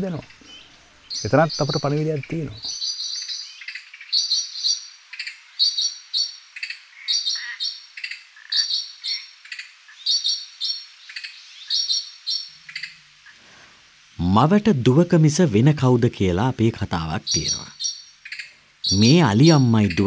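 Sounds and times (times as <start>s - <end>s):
bird chirping: 0.0s - 13.4s, 15.6s - 20.0s.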